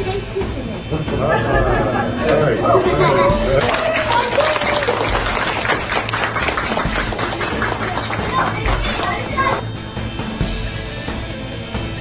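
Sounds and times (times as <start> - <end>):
background music: 0.0 - 12.0
children talking and calling out: 1.5 - 4.6, 7.4 - 9.7.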